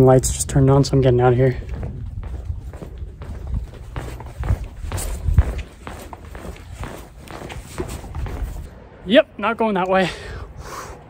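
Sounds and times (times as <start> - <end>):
hurried footsteps on concrete: 0.5 - 8.7
low thumps: 1.5 - 8.7.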